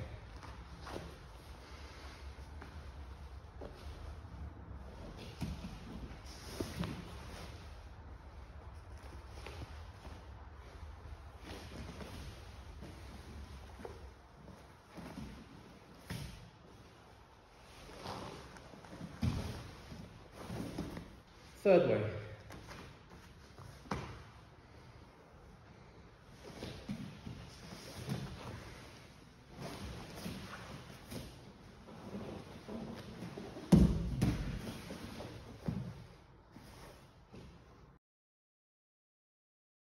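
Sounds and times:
bodies thudding on a mat: 18.0 - 21.2, 22.5 - 24.4, 29.5 - 36.1.

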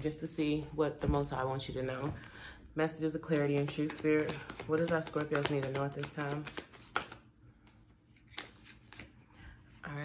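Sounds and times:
woman speaking: 0.0 - 6.6, 9.8 - 10.0
cards being shuffled by hand: 3.2 - 9.3.

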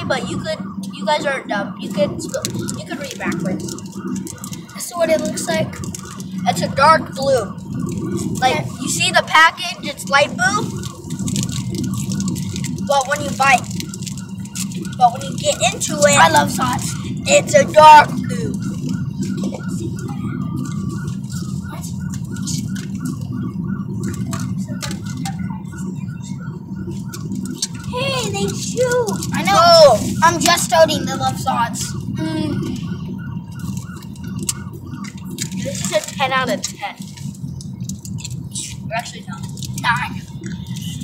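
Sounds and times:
car road and engine rumble: 0.0 - 41.0
faint voices: 0.0 - 41.0.

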